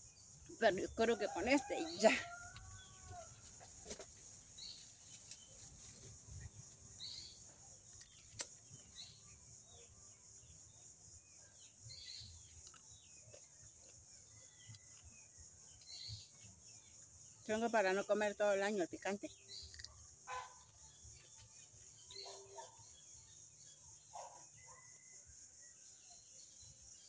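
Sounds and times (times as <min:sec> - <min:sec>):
insect drone: 0:00.0 - 0:27.0.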